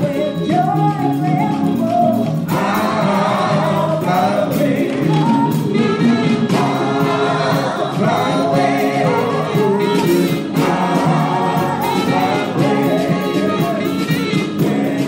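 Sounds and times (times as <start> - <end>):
choir singing gospel: 0.0 - 15.0.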